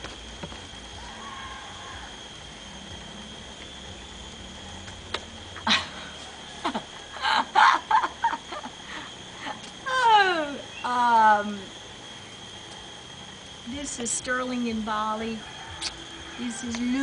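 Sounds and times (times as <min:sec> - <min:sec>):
steady high-pitched hum: 0:00.0 - 0:17.0
woman laughing: 0:05.6 - 0:10.3.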